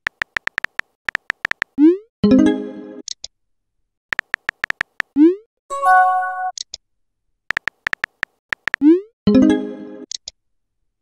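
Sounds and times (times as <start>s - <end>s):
phone keyboard taps: 0.0s - 1.8s, 4.1s - 5.1s, 7.5s - 8.8s.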